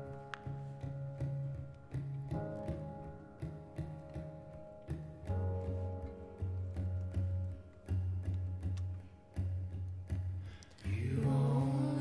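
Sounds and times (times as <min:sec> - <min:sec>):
guitar strummed: 0:00.0 - 0:12.0
woman singing long note: 0:10.9 - 0:12.0.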